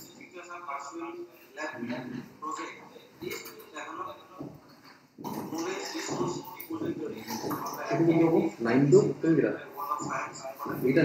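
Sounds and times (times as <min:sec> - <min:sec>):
man speaking over video call: 0:05.2 - 0:11.0.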